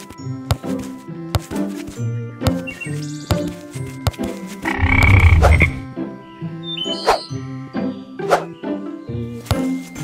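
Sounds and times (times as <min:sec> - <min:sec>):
light background music: 0:00.0 - 0:10.0
buzzy croaking sound effect: 0:04.6 - 0:05.8.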